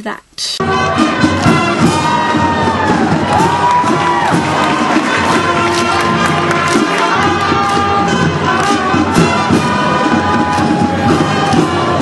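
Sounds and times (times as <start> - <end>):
crowd cheering and shouting: 0.6 - 12.0
marching band playing: 0.6 - 12.0.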